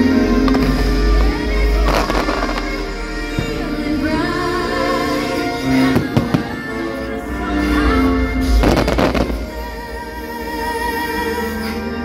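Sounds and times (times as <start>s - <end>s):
soundtrack music: 0.0s - 12.0s
fireworks crackling: 0.4s - 3.7s, 8.5s - 9.9s
deep firework boom: 8.4s - 10.1s.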